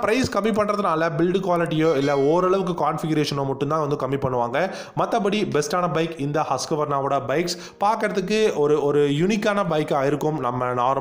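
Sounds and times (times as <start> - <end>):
man narrating: 0.0 - 11.0.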